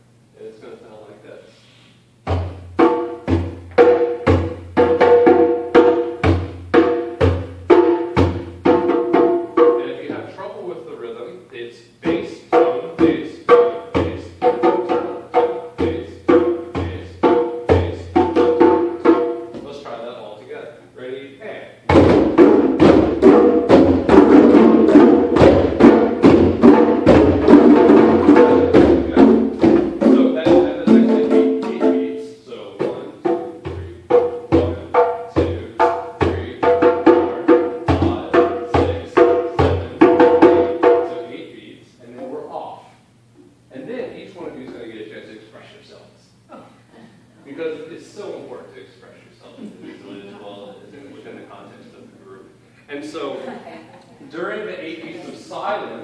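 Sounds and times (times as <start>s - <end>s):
hand drums playing rhythm: 2.2s - 10.2s, 12.1s - 19.8s, 21.8s - 41.3s.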